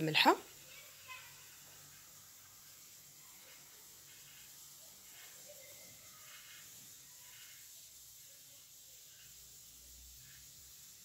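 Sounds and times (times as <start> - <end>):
food frying gently in a pan: 0.0 - 11.0.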